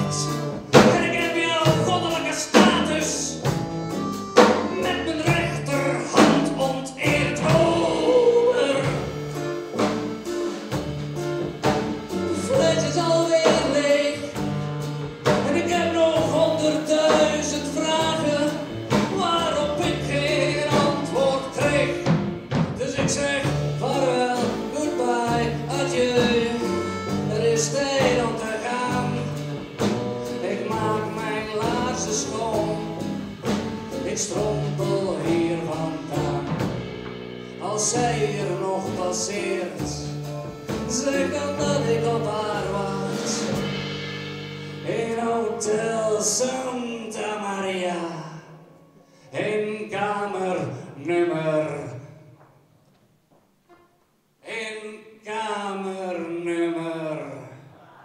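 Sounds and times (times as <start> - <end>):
accordion: 0.0 - 44.1
drum hits: 0.0 - 46.9
upright double bass: 0.0 - 47.4
acoustic guitar: 0.0 - 58.0.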